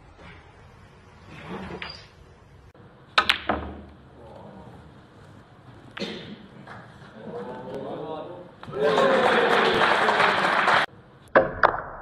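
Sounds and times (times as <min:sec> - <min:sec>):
snooker balls rolling: 0:00.1 - 0:07.8
snooker balls clicking together: 0:03.2 - 0:04.0.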